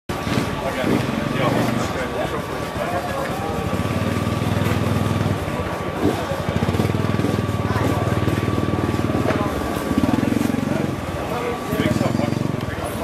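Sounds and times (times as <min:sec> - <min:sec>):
motorcycle engine idling: 0:00.1 - 0:13.0
people talking: 0:00.1 - 0:13.0.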